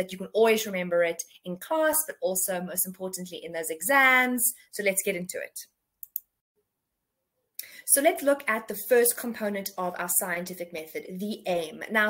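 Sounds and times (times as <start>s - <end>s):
woman speaking: 0.0s - 5.7s, 7.6s - 12.0s
mouth clicks: 6.0s - 6.3s
faint breath: 7.6s - 7.9s.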